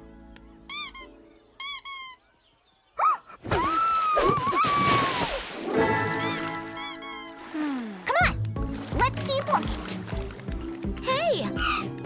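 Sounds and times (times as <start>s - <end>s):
high squeaky cartoon chirps: 0.7s - 2.3s, 6.1s - 7.4s.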